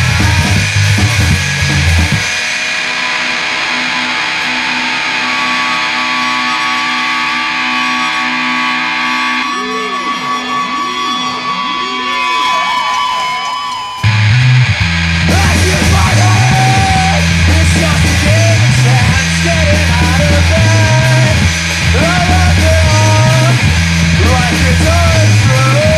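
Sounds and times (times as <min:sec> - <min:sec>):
held electric guitar notes: 0:00.0 - 0:25.9
punk rock band playing: 0:00.0 - 0:25.9.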